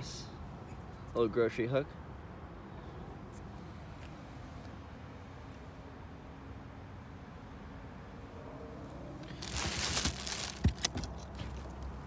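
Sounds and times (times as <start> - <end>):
plastic wrap rustling: 9.3 - 11.0.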